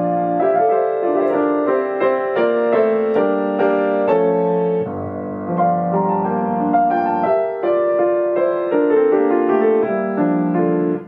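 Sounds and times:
solo grand piano: 0.0 - 11.0.

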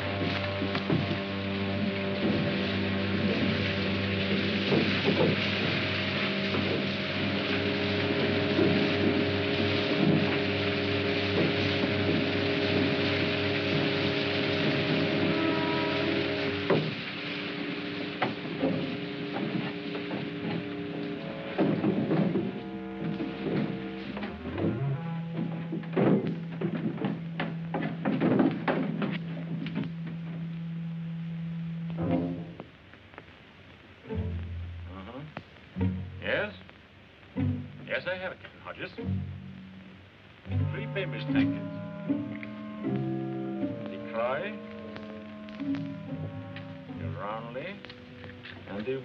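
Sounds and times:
low held note: 0.0 - 32.6, 40.6 - 48.9
orchestral chords: 0.0 - 32.6, 37.3 - 49.0
rushing water: 0.0 - 49.0.

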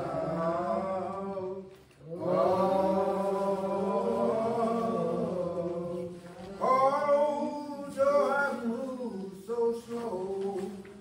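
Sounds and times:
slow church singing: 0.0 - 11.0.

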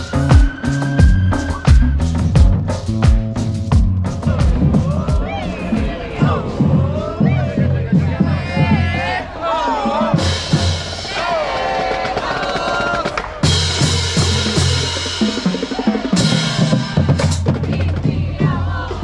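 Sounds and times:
marching band playing: 0.0 - 19.0.

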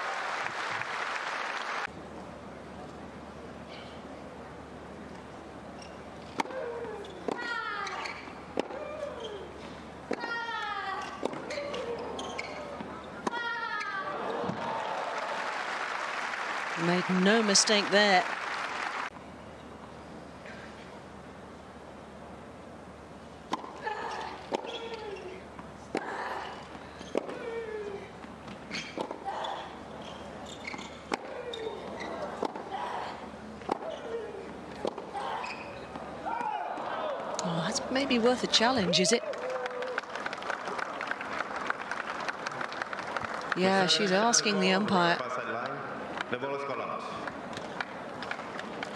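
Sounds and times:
crowd noise: 8.1 - 19.1.

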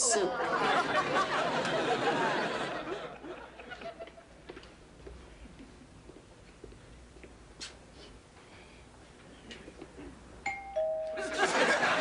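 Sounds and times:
two-tone doorbell chime: 10.4 - 11.8.

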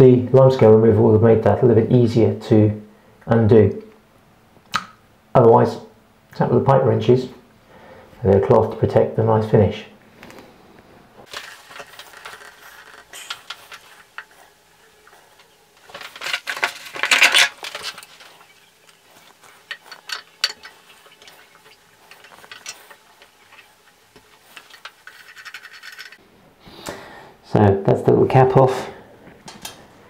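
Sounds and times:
rustling scrape: 11.2 - 26.2.

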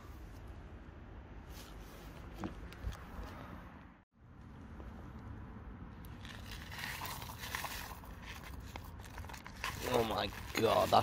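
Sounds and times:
plastic sachets crinkling and tearing: 6.1 - 11.0.

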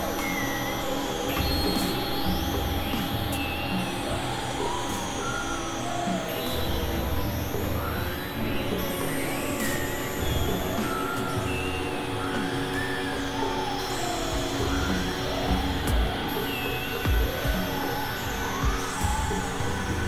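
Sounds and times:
experimental electronic music: 0.0 - 20.0.

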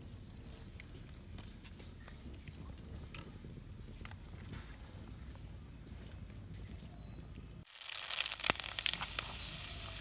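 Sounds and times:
wood fire crackling: 7.6 - 10.0.

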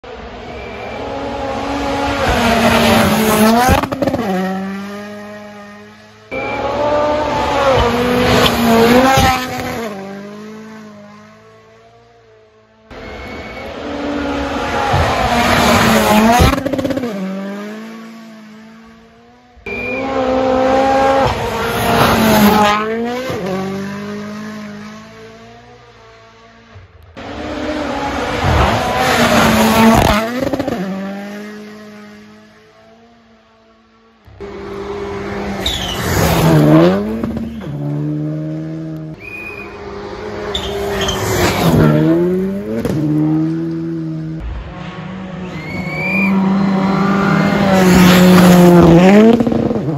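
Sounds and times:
rally cars passing at speed: 0.0 - 49.9.

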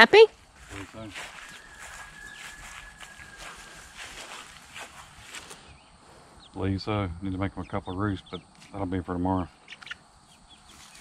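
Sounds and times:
footsteps through grass: 0.2 - 6.4, 10.6 - 11.0
low outdoor hiss: 3.6 - 11.0.

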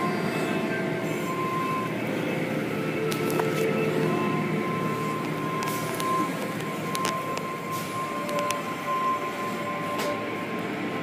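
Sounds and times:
car wash machinery and water rumble: 0.0 - 11.0.

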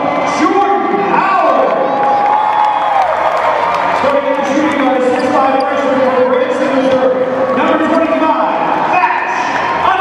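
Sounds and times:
announcer's echoing voice: 0.0 - 2.0, 3.9 - 10.0
crowd cheering: 0.0 - 10.0.

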